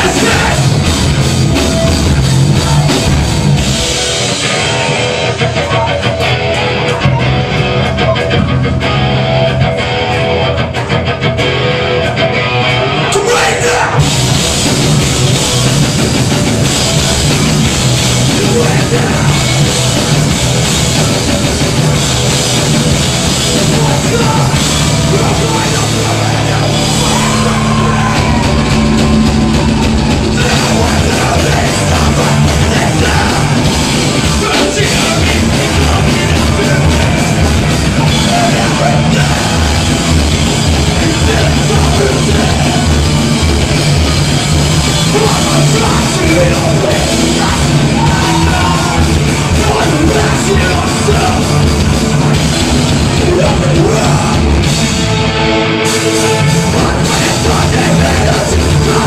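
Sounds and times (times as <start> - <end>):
drums: 0.0 - 59.0
loud electric guitars: 0.0 - 59.0
rock band playing loud: 0.0 - 59.0.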